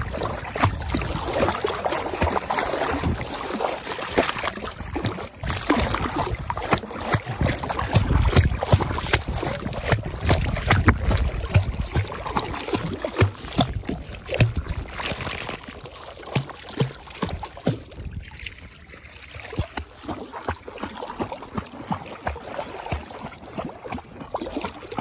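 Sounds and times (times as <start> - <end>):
puppy splashing in water: 0.0 - 25.0.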